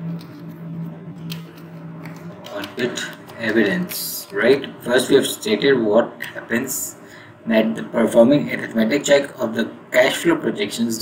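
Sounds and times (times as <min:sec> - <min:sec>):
keyboard typing: 0:01.3 - 0:04.5.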